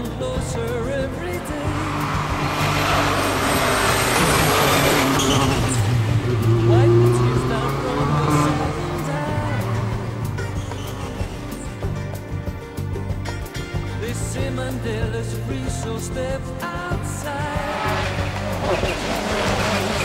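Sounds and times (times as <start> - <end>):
rally car engine passing by: 0.0 - 13.2, 16.7 - 20.0.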